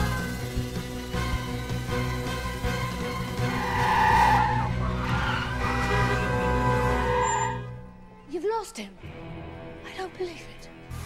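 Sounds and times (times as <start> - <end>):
film music: 0.0 - 11.0
car tyres screeching: 2.4 - 7.9.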